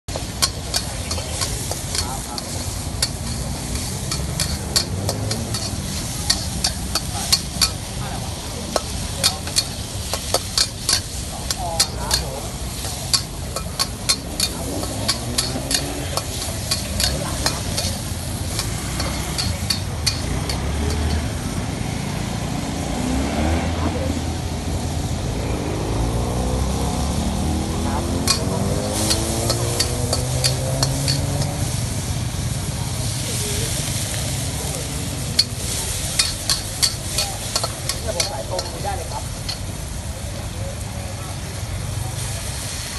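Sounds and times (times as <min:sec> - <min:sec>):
rice sizzling: 0:00.0 - 0:23.5, 0:24.4 - 0:42.9
metal spatula clacking on wok: 0:00.1 - 0:08.0, 0:08.7 - 0:21.3, 0:28.0 - 0:31.8, 0:35.2 - 0:39.8
motor scooter passing: 0:00.2 - 0:09.2, 0:11.8 - 0:39.8.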